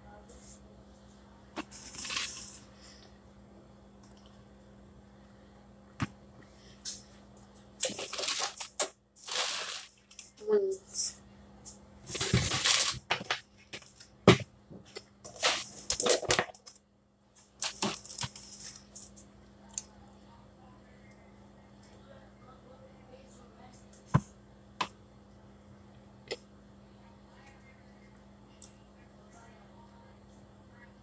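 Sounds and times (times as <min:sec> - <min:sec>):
crinkly rustles: 0:12.1 - 0:14.1
kitchen items knocking and clattering: 0:12.1 - 0:16.8.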